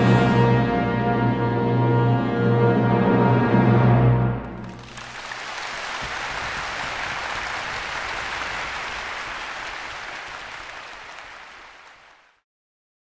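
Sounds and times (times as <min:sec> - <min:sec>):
audience applause: 0:04.4 - 0:12.4.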